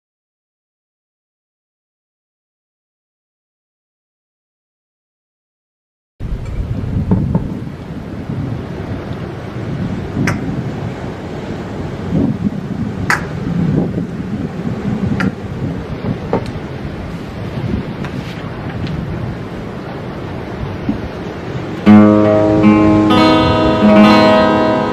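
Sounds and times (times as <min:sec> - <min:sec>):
wind rumble on microphone: 0:06.2 - 0:24.9.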